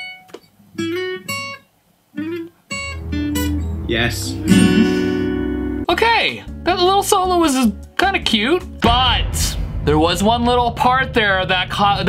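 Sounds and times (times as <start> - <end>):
acoustic guitar solo: 0.0 - 5.9.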